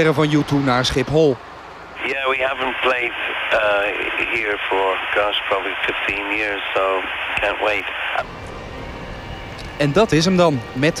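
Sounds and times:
low steady background noise: 0:00.0 - 0:11.0
voice speaking over a phone line: 0:02.0 - 0:08.2.

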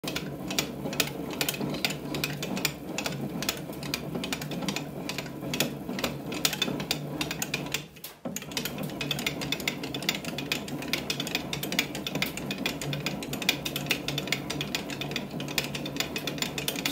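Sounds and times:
bat-rolling press clicking and creaking: 0:00.1 - 0:16.9.

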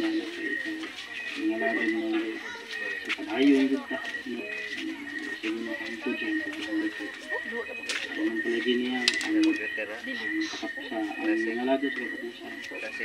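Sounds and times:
voice through small speaker: 0:00.0 - 0:13.0.

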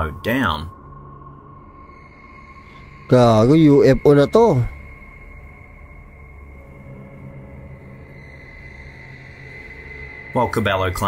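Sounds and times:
low sustained drone: 0:00.0 - 0:11.0
faint high-pitched tone: 0:01.8 - 0:11.0.

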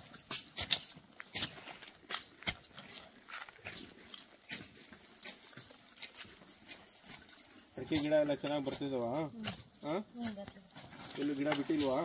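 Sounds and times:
hand hoes scraping soil: 0:00.0 - 0:12.0.

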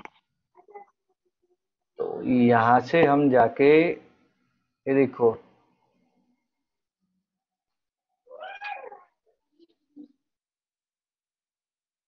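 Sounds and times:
meow-like animal call: 0:08.3 - 0:09.1.

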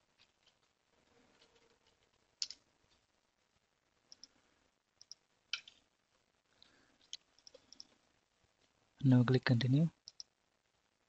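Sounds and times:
computer mouse clicks: 0:01.4 - 0:02.6, 0:04.1 - 0:04.4, 0:05.0 - 0:05.8, 0:07.0 - 0:08.0, 0:10.0 - 0:10.4.

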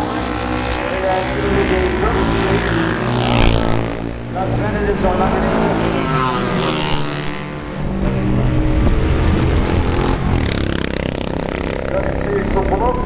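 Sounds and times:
racing motorcycles passing: 0:00.0 - 0:13.0.

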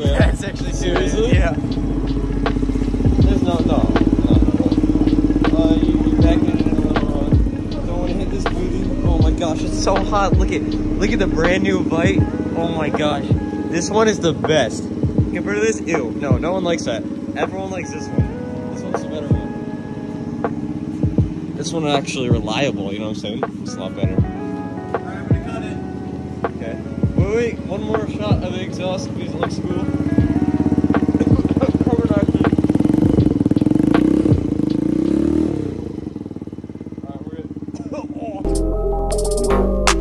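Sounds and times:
electronic music with heavy beat: 0:00.0 - 0:10.7, 0:20.4 - 0:21.3, 0:38.5 - 0:40.0
music playing: 0:00.0 - 0:35.2, 0:38.4 - 0:40.0
motorbike engine idling: 0:00.0 - 0:38.4.

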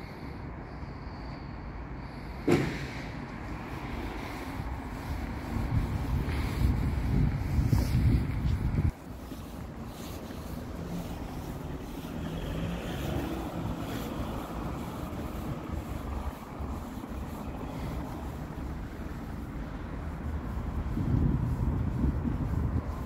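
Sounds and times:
distant traffic hum: 0:00.0 - 0:23.0
wind on microphone: 0:03.5 - 0:23.0.

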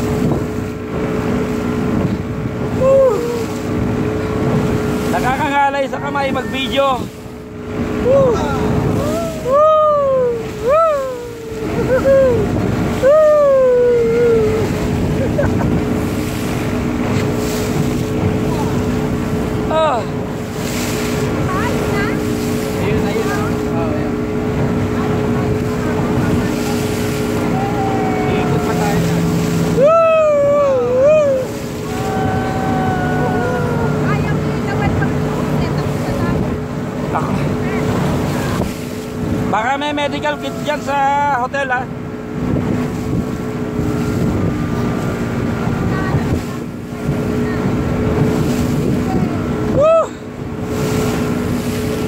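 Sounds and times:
motorboat engine running: 0:00.0 - 0:52.0
wind on microphone: 0:00.0 - 0:52.0
people shouting: 0:27.4 - 0:34.1, 0:40.1 - 0:41.2.

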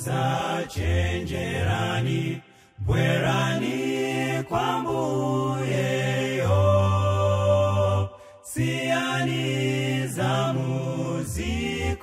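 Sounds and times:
men singing in close harmony: 0:00.0 - 0:12.0.

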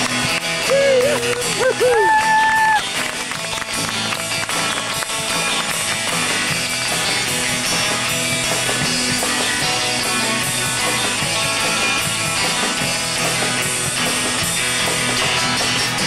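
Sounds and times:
live surf rock band: 0:00.0 - 0:16.0.

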